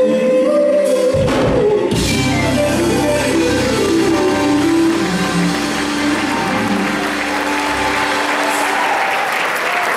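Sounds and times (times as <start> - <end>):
gospel band playing: 0.0 - 9.9
bass guitar: 1.2 - 8.6
audience applause: 3.5 - 9.9.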